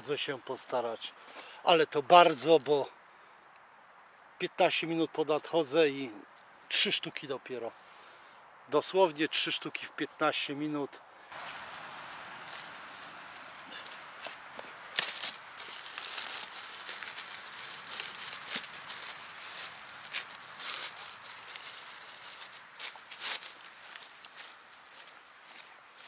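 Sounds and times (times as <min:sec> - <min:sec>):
leaf litter rustling: 0:11.3 - 0:26.0
twigs snapping: 0:11.3 - 0:26.0.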